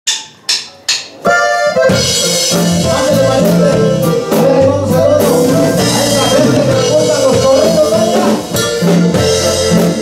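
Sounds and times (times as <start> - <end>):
band playing: 0.4 - 10.0
accordion chord: 1.3 - 10.0.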